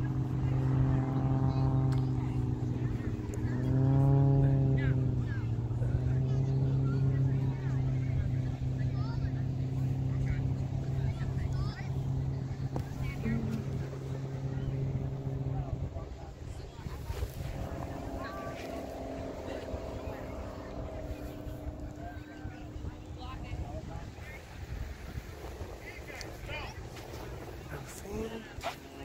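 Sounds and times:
faint voices: 0:00.0 - 0:29.0
low engine drone: 0:00.0 - 0:29.0.

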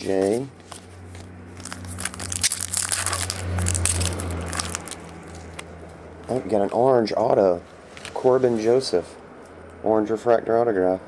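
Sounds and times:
foil pack crackling: 0:01.5 - 0:05.7.

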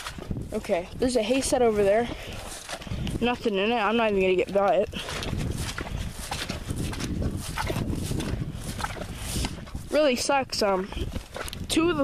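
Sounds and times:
boots walking through wet grass: 0:00.0 - 0:12.0.

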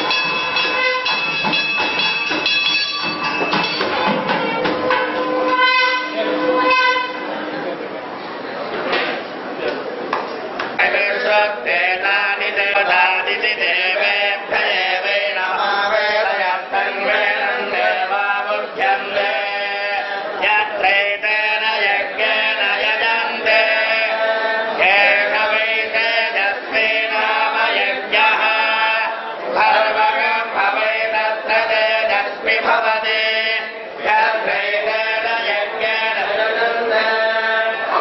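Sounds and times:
men chanting in unison: 0:10.8 - 0:38.0.

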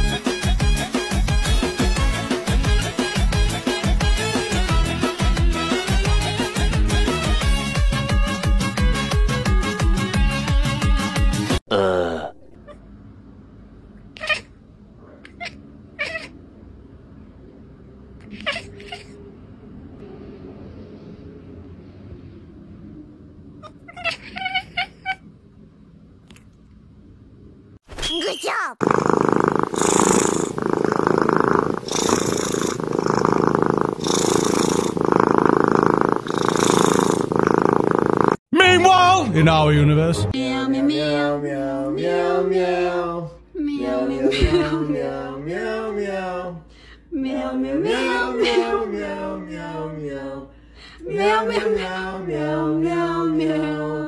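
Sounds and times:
cat purring: 0:28.8 - 0:38.4.

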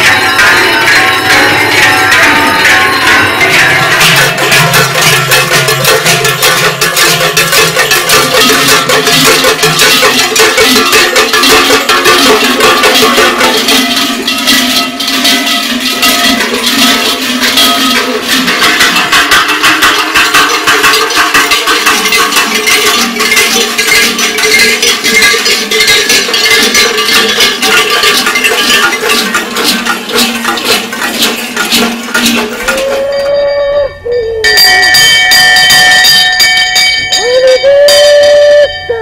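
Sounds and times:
cowbells clanging: 0:00.0 - 0:39.0.

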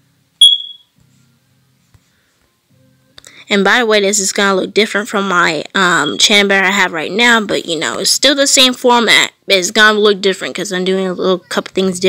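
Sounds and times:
short high-pitched beep: 0:00.4 - 0:00.9.

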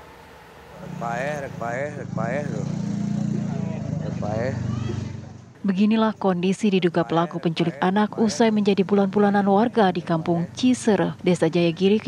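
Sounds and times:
small engine running: 0:00.0 - 0:05.5
people's voices: 0:00.7 - 0:12.0.

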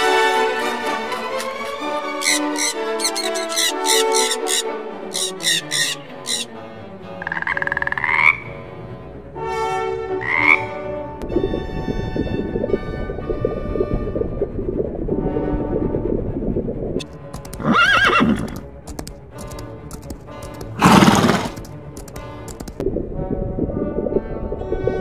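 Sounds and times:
background music: 0:00.0 - 0:25.0
frog croaking: 0:02.2 - 0:06.5, 0:07.1 - 0:08.7, 0:10.2 - 0:10.7
sharp bird calls: 0:02.2 - 0:06.5.

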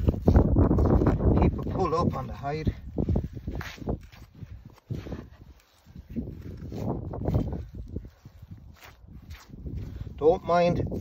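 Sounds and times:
rustling and handling noises: 0:03.4 - 0:09.4.

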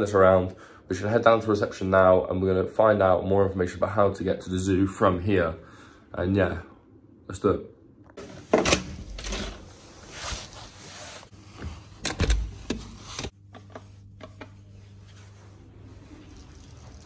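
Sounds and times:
steady low hum: 0:04.7 - 0:17.0
handling and rustling: 0:08.2 - 0:13.3.

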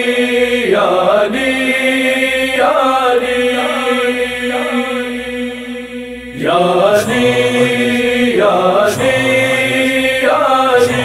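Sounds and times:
men chanting: 0:00.0 - 0:11.0
steady held drone: 0:00.0 - 0:11.0.

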